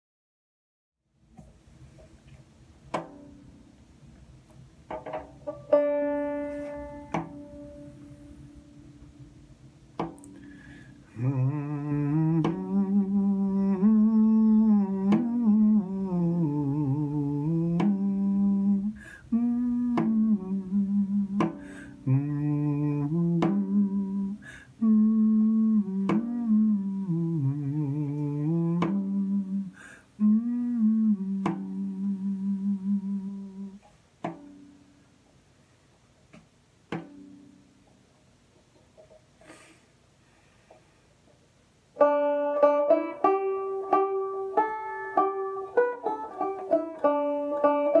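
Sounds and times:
man humming a slow melody: 0:10.2 - 0:33.9, 0:42.0 - 0:48.0
breaths: 0:10.3 - 0:11.2, 0:19.0 - 0:19.3, 0:21.6 - 0:22.0, 0:24.4 - 0:24.8, 0:29.7 - 0:30.2, 0:39.4 - 0:41.2.

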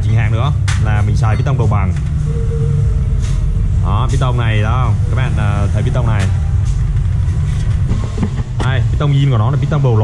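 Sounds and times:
steady low rumble: 0:00.0 - 0:09.4
faint hum: 0:01.3 - 0:07.3.

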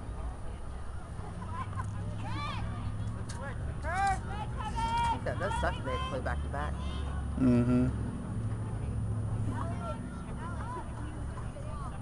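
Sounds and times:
distant voices shouting: 0:01.4 - 0:08.0.

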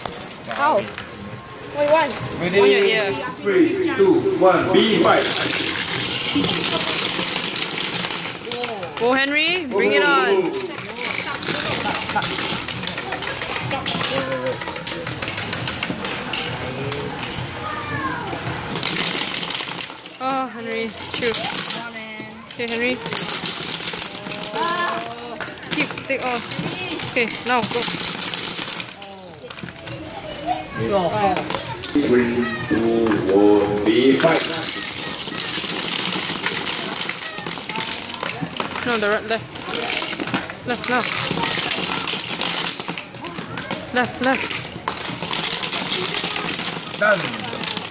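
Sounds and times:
toy marble shooters clicking: 0:05.0 - 0:17.4, 0:18.2 - 0:30.6, 0:31.2 - 0:47.9
marbles striking plastic: 0:05.1 - 0:17.4, 0:18.2 - 0:30.0, 0:31.1 - 0:47.9
voices: 0:08.3 - 0:18.7, 0:20.2 - 0:28.0, 0:28.8 - 0:35.7, 0:36.4 - 0:47.9.

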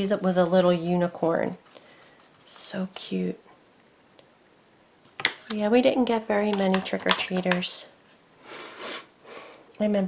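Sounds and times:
person sniffing: 0:08.4 - 0:09.6.

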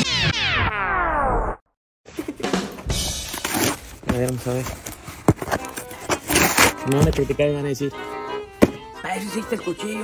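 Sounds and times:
music: 0:02.2 - 0:03.7, 0:05.3 - 0:10.0
tape and cardboard ripping: 0:03.2 - 0:07.2.

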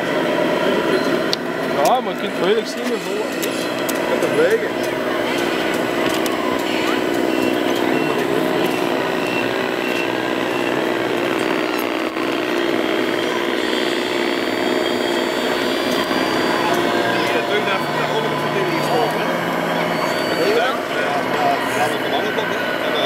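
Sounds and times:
background chatter: 0:00.0 - 0:23.0
small electric motors whining: 0:00.0 - 0:23.0
thin high tone: 0:02.0 - 0:23.0.

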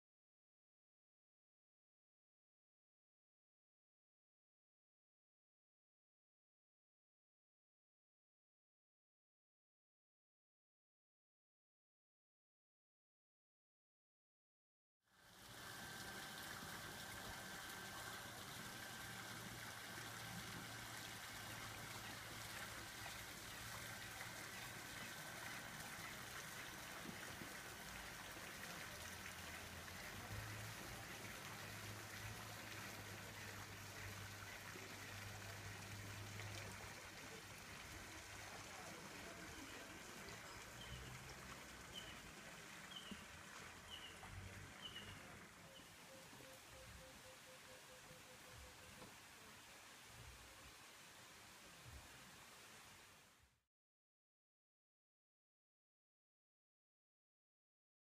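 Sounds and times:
water trickling: 0:15.2 - 0:52.9.

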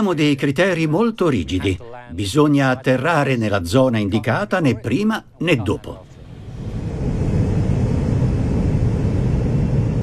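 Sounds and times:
turboprop aircraft engines rumbling: 0:05.6 - 0:10.0.

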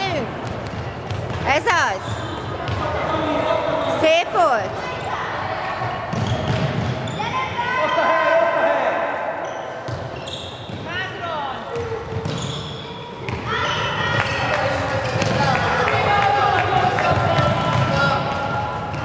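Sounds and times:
sneakers squeaking: 0:00.0 - 0:08.4, 0:09.1 - 0:16.0, 0:16.8 - 0:19.0
ball bouncing on wooden floor: 0:11.8 - 0:12.5.

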